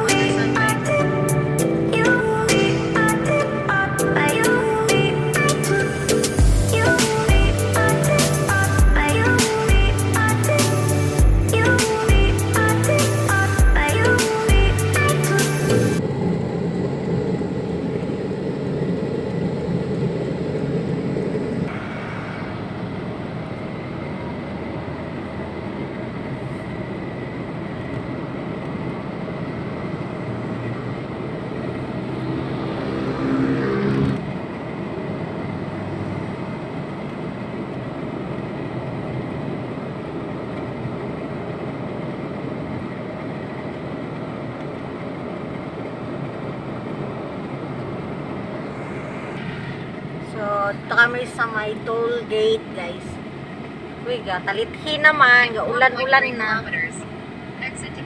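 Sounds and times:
car road and engine noise: 0.0 - 58.0.

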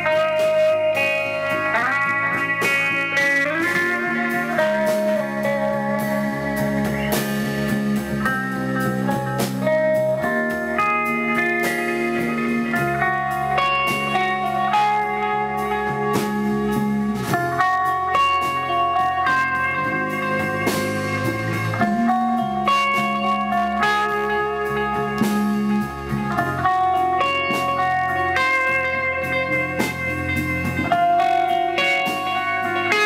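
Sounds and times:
bass: 0.0 - 33.0
drums: 0.0 - 33.0
guitar long held notes: 0.0 - 33.0.

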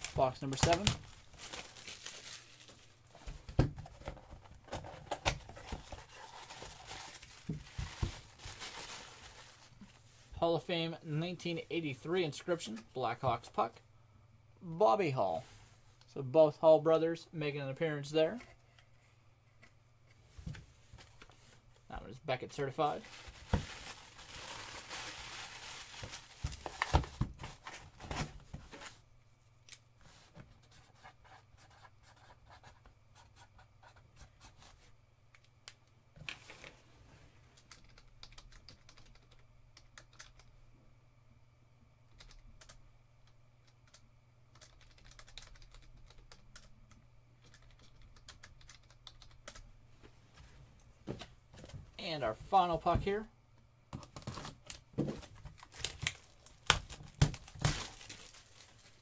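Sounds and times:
paper packing crinkling: 0.0 - 3.3, 3.9 - 9.9, 22.9 - 28.9, 54.1 - 59.0
computer keyboard typing: 37.6 - 40.5, 42.1 - 46.7, 47.4 - 49.6.

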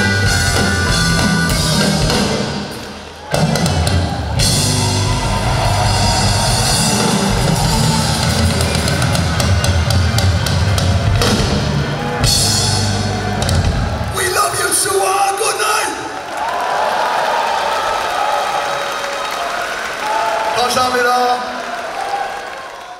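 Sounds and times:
military band playing rock and roll: 0.0 - 14.9.

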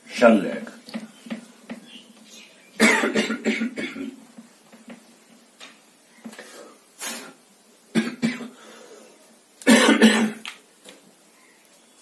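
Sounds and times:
man coughing: 2.8 - 4.2, 8.0 - 8.5, 9.7 - 10.4.

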